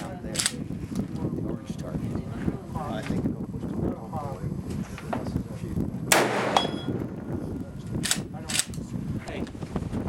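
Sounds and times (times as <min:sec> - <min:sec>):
shotgun shot: 0:06.1 - 0:06.9
short metallic ding: 0:06.6 - 0:06.9.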